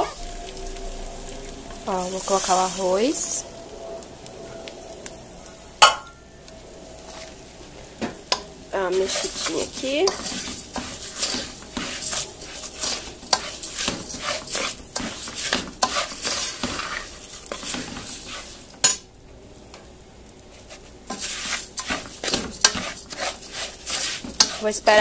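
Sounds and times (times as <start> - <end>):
rice sizzling in a pot: 0.0 - 25.0
spoon scraping a pot: 9.0 - 18.6, 20.7 - 25.0.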